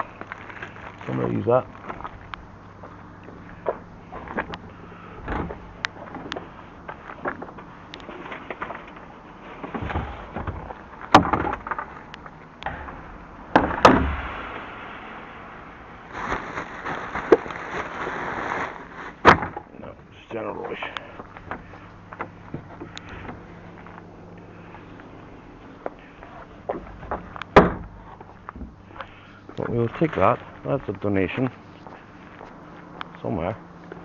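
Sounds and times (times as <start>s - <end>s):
rustling of rummaging: 16.0s - 19.7s.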